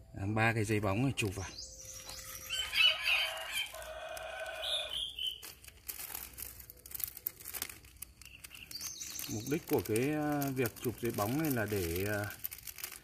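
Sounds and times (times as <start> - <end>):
plastic bag crinkling: 1.6 - 13.0
rooster crowing: 2.4 - 5.2.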